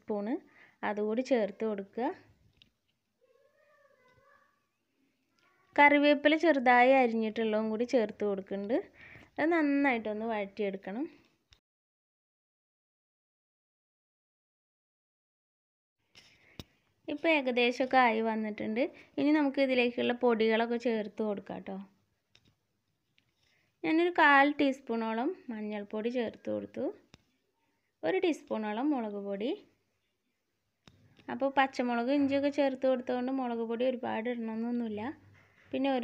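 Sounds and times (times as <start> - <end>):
woman speaking: 0.0 - 2.3, 5.7 - 11.2, 17.1 - 21.9, 23.8 - 27.0, 28.0 - 29.7, 31.3 - 36.0
faint drawn-out animal call: 3.2 - 4.6.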